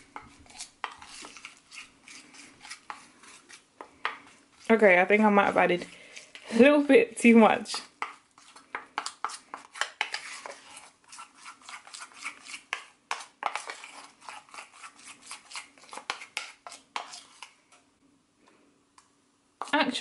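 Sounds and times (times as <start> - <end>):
metal spoon stirring in bowl: 0.0 - 6.8, 7.6 - 17.6.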